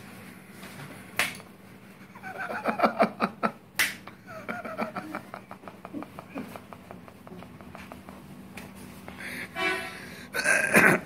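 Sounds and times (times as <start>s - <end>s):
sharp finger snaps: 3.8s - 4.1s.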